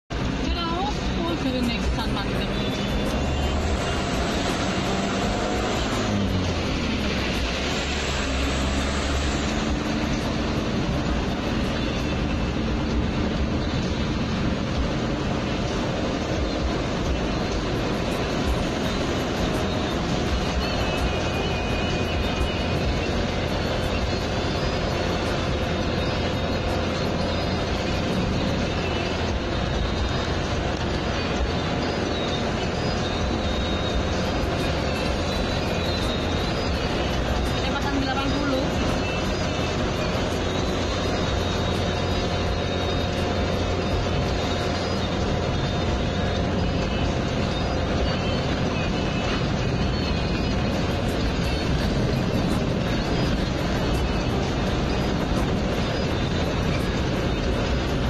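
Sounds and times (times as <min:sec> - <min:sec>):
vehicle engine and road noise: 0:00.0 - 0:58.0
music: 0:00.2 - 0:58.0.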